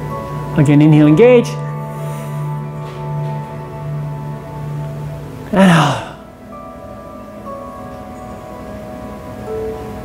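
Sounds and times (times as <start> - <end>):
ambient music with chime-like tones: 0.0 - 10.0.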